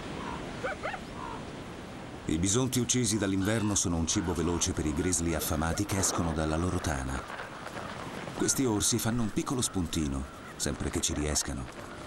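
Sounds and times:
coyote yipping: 0.2s - 1.4s.

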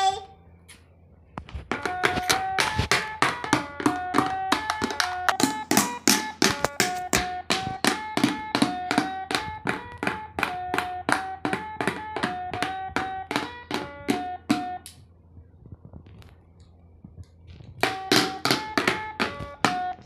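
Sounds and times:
plastic drumsticks tapping: 1.7s - 15.0s
toy drum electronic tune: 1.7s - 15.0s, 17.8s - 20.0s
clicking beat: 1.8s - 15.0s.

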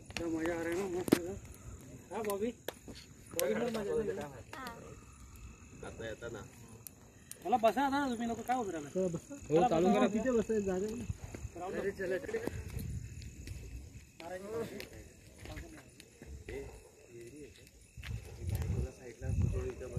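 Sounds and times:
people's voices: 0.1s - 19.9s.

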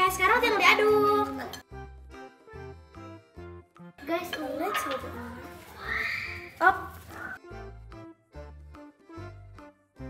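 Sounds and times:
girls talking and exclaiming: 0.0s - 1.6s, 4.0s - 7.4s
light children's music: 0.0s - 10.0s.

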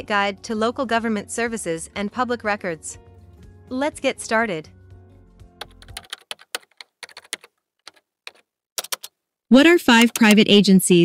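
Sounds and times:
computer keyboard typing: 5.6s - 9.2s, 9.8s - 10.6s.

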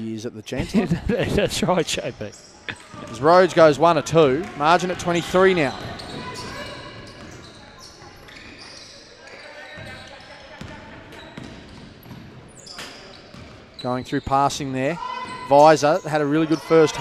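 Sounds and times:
players' voices calling: 0.6s - 17.0s
basketball bouncing on wooden floor: 10.6s - 12.4s, 13.3s - 13.6s.

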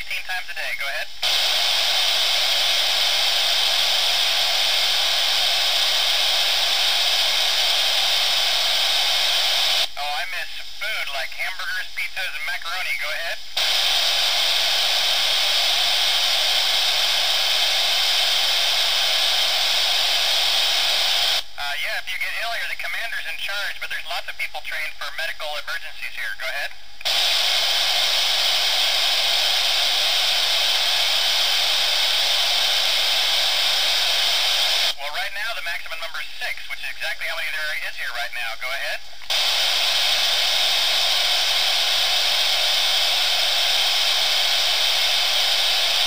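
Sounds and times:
radio static hiss: 0.0s - 46.0s.

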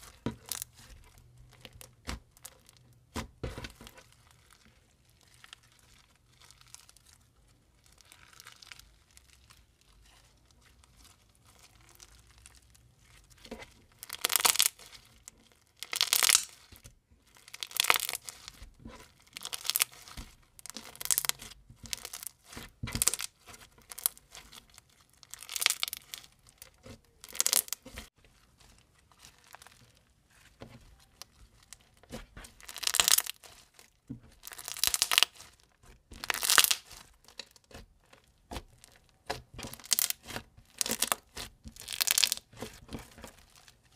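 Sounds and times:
slime crackling and popping: 0.0s - 43.9s.

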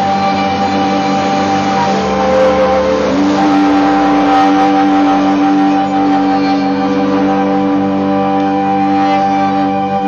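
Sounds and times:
amplified droning music: 0.0s - 10.0s
violin droning notes: 0.0s - 10.0s.

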